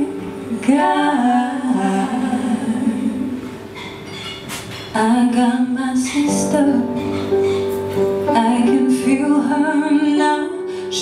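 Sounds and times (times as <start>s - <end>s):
quiet live musical accompaniment: 0.0s - 11.0s.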